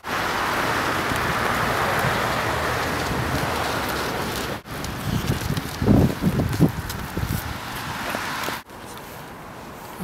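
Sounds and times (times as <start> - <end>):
walker wheels rolling over icy snow: 0.0 - 10.0.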